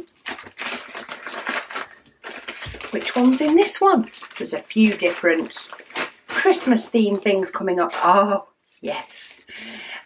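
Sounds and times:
plastic packaging crinkling: 0:00.0 - 0:07.6.

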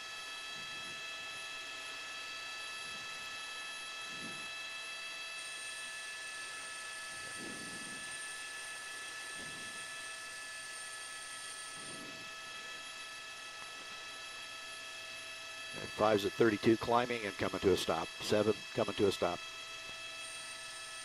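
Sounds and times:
helicopter turbine whine: 0:00.0 - 0:21.0.

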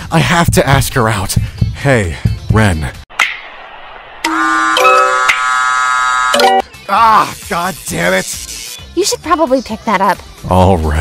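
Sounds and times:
phone ringtone melody: 0:04.3 - 0:05.4, 0:06.3 - 0:06.7.

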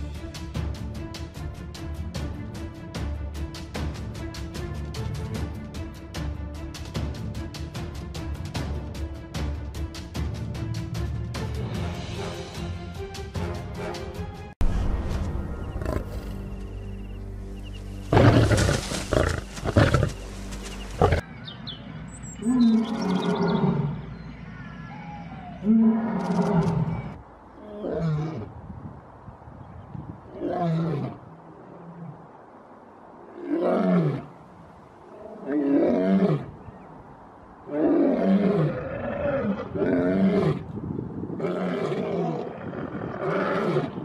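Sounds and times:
lion roaring: 0:37.7 - 0:40.6, 0:41.4 - 0:44.0.

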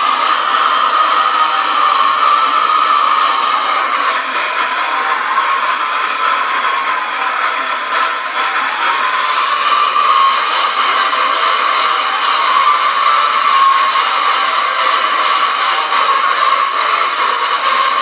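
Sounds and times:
distorted soundtrack mashup: 0:00.0 - 0:18.0.

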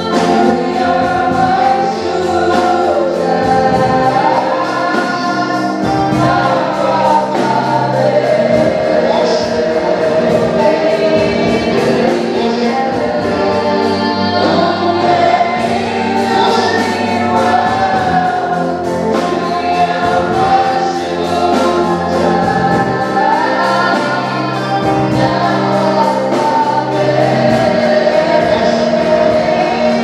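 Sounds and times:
electronic keyboard chords: 0:00.0 - 0:30.0
woman singing into a microphone: 0:10.5 - 0:30.0.

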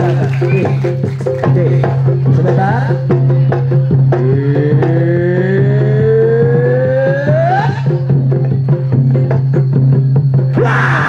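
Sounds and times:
drums playing a repeating pattern: 0:00.0 - 0:11.0
rising pitched tone: 0:04.1 - 0:08.2.

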